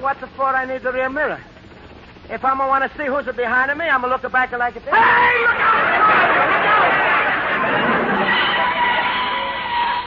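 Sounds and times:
audience laughing loudly: 5.5s - 9.8s.

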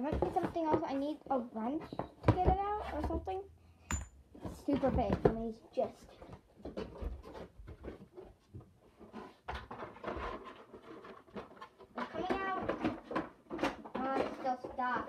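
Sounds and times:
clicks and rustles of unboxing: 6.0s - 15.0s.

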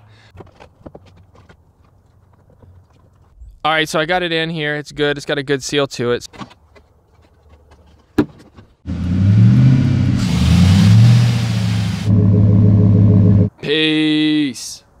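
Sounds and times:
engine intake rush: 8.9s - 13.5s
truck engine revving: 8.9s - 13.5s.

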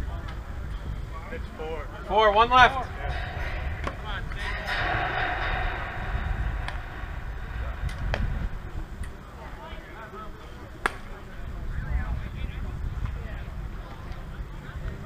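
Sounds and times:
distant voices talking: 0.0s - 15.0s
wind rumbling on microphone: 2.4s - 10.1s
sharp knock: 2.8s - 9.2s.

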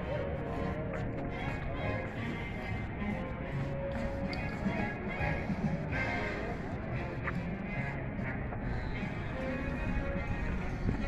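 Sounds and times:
music over outdoor loudspeakers: 0.0s - 11.0s.

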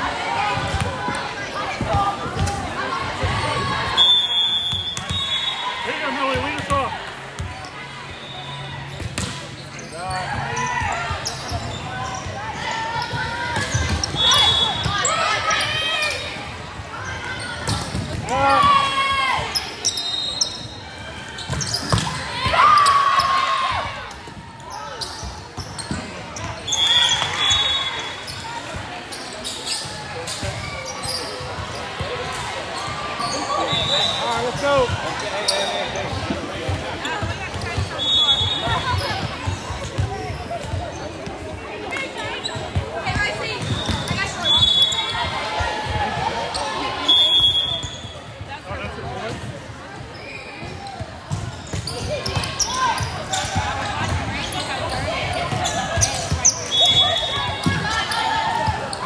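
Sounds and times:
people shouting and cheering: 0.0s - 8.9s, 10.0s - 25.0s, 29.9s - 47.8s, 51.8s - 59.0s
referee whistle blasts: 3.9s - 5.9s, 14.1s - 15.1s, 26.7s - 28.2s, 33.6s - 34.3s, 37.9s - 38.9s, 43.7s - 45.2s, 47.0s - 48.1s, 56.6s - 57.6s.

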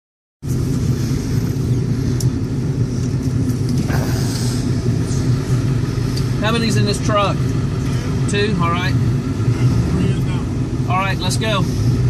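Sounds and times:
truck engine and road rumble: 0.4s - 12.0s.

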